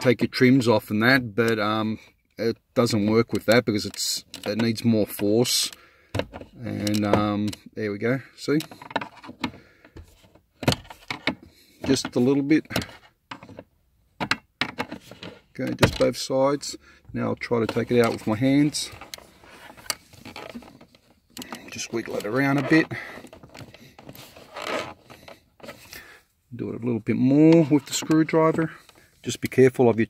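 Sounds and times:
plastic and metal clicks and scrapes: 0:03.0 - 0:07.7, 0:08.5 - 0:16.2, 0:17.4 - 0:26.0.

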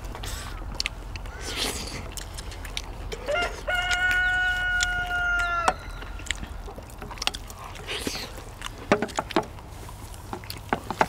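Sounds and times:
rooster crowing: 0:03.2 - 0:06.0.

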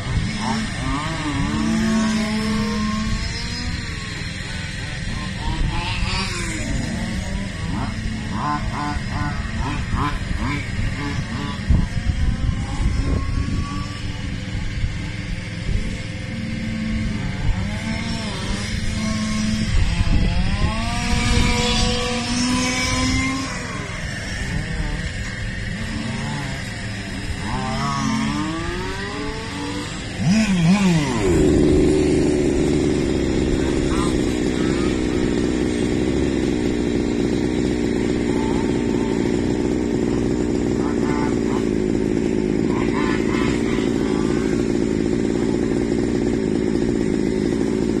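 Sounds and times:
small two-stroke engine revving: 0:00.0 - 0:48.0.

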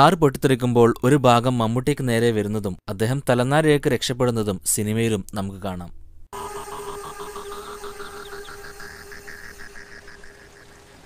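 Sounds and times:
quick chirping blips: 0:06.4 - 0:11.0
steady held tone: 0:06.4 - 0:11.0.

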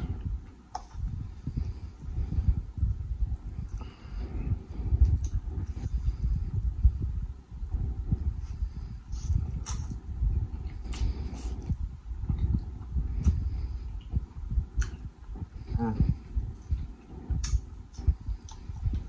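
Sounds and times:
chewing and wet mouth sounds: 0:00.0 - 0:19.0
sharp little mouth clicks: 0:14.7 - 0:15.1, 0:17.3 - 0:19.0.

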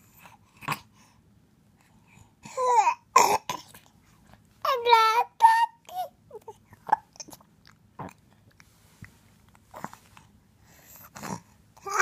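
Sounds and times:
baby spluttering cough: 0:03.2 - 0:03.7.

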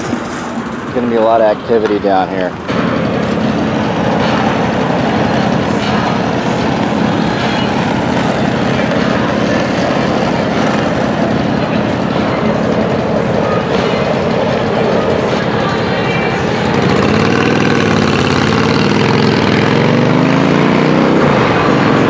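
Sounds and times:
low hum: 0:00.0 - 0:22.0
traffic driving past: 0:00.0 - 0:22.0.

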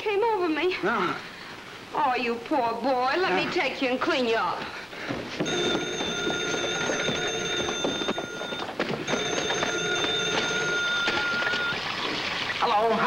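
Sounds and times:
telephone bell ringing: 0:05.4 - 0:12.0.

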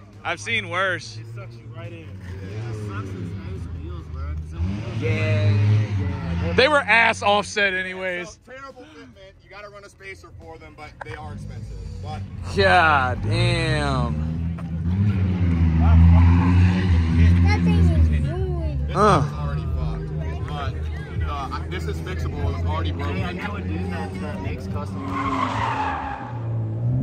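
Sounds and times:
men talking: 0:00.0 - 0:25.9.

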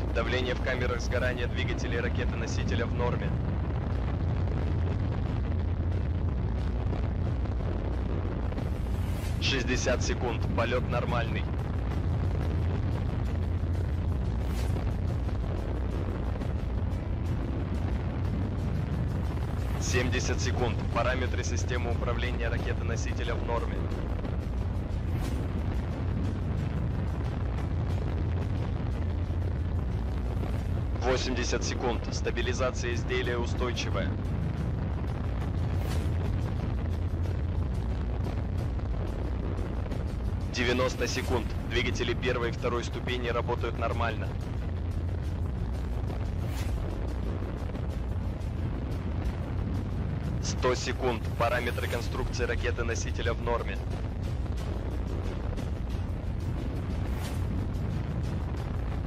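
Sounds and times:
rocket engines rumbling: 0:00.0 - 0:59.0.

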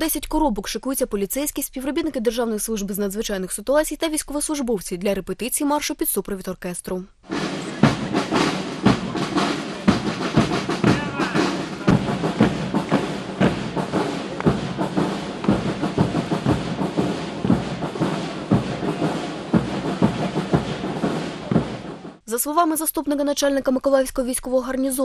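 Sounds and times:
drum beats: 0:07.2 - 0:22.2
brass band playing a march: 0:07.3 - 0:22.2
marching boots on asphalt: 0:07.3 - 0:22.2.

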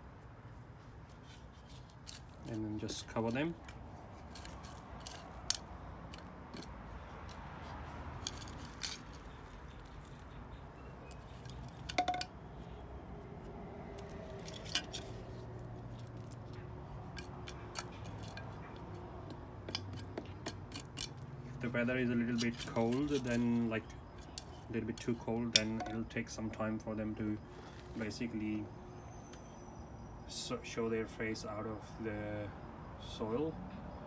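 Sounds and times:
hand trowel scraping soil: 0:01.1 - 0:10.2, 0:19.7 - 0:25.8.

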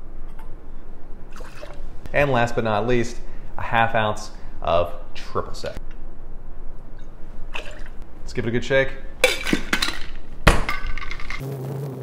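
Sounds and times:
ice rattling in shaker: 0:09.8 - 0:11.4.

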